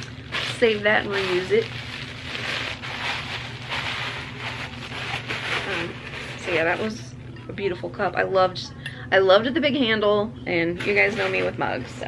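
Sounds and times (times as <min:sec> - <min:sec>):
tissue paper crinkling: 0:00.0 - 0:07.0, 0:10.8 - 0:12.0.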